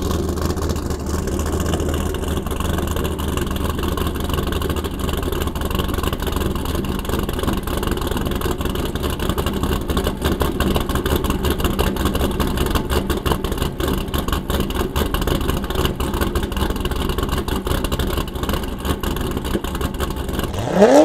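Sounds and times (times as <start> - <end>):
car engine idling with choppy lope: 0.0 - 21.0.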